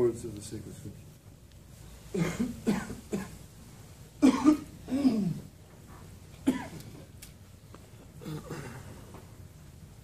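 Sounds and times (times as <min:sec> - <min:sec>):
person coughing: 0:02.1 - 0:03.4, 0:04.2 - 0:05.5, 0:06.4 - 0:06.9, 0:08.2 - 0:09.0.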